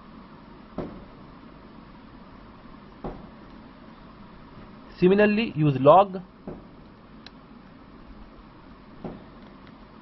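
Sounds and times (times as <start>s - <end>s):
low hiss: 0.0s - 10.0s.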